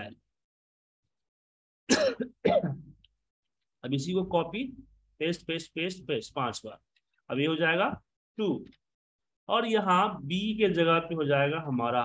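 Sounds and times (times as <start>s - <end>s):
man clearing his throat: 1.9s - 3.0s.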